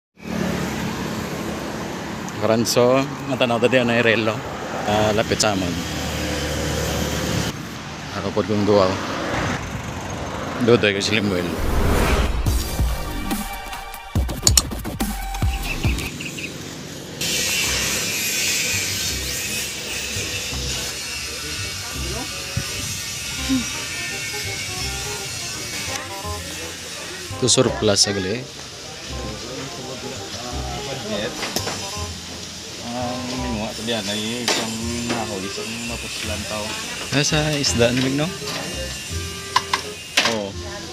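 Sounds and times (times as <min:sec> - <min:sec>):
vehicle passing by: 0:00.2 - 0:13.8.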